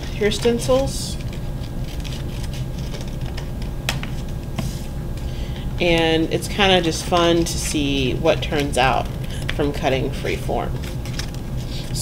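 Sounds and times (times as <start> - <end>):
steady low hum: 0.0 - 12.0
paper rustling: 0.3 - 4.9, 10.8 - 12.0.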